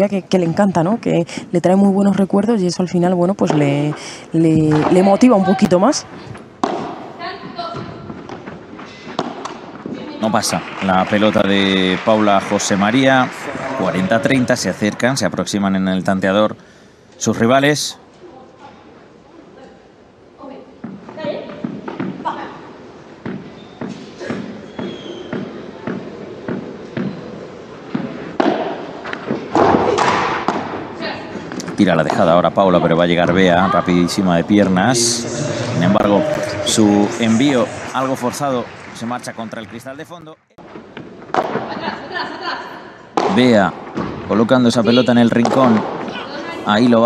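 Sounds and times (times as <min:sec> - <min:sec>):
ball bouncing on court: 0:03.4 - 0:04.0, 0:04.6 - 0:05.7, 0:06.6 - 0:10.5, 0:20.8 - 0:22.3, 0:23.2 - 0:27.2, 0:27.9 - 0:30.8, 0:40.9 - 0:41.9, 0:43.1 - 0:46.2
ball bouncing on turf: 0:03.4 - 0:04.0, 0:04.6 - 0:05.7, 0:06.6 - 0:08.5, 0:45.2 - 0:46.2
padel ball struck by rackets: 0:06.6 - 0:07.1, 0:09.2 - 0:09.9, 0:23.2 - 0:27.2, 0:27.9 - 0:30.8, 0:43.2 - 0:44.2, 0:45.4 - 0:46.1
faint voices: 0:34.5 - 0:38.3
loud noise: 0:34.7 - 0:39.1.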